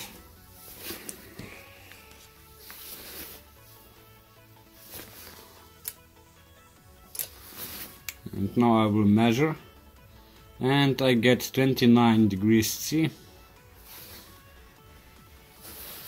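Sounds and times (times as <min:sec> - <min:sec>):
faint background music: 0:00.0 - 0:16.0.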